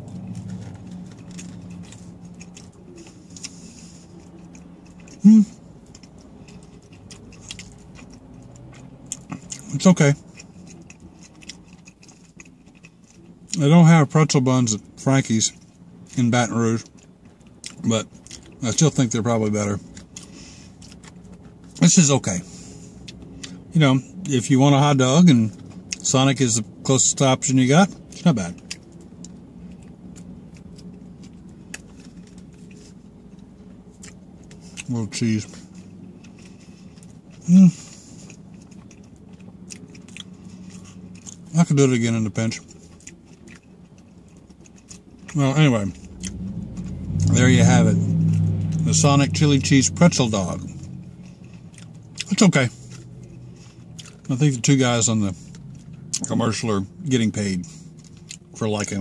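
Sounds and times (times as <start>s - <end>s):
faint chewing: 0.0s - 59.0s
low steady car hum: 0.0s - 59.0s.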